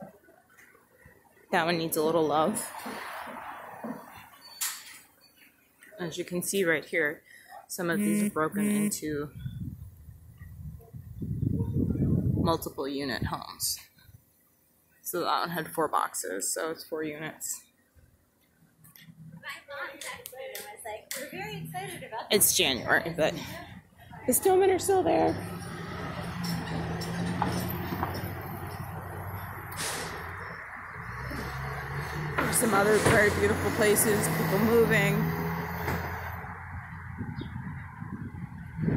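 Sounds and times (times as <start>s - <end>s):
faint street noise: 0.0s - 38.9s
wind buffeting microphone: 9.3s - 13.3s, 36.4s - 38.9s.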